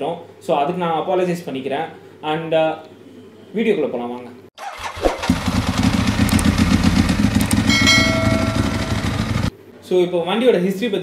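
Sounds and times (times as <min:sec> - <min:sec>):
motorcycle engine running: 0:05.2 - 0:09.5
steady higher tone: 0:07.4 - 0:09.5.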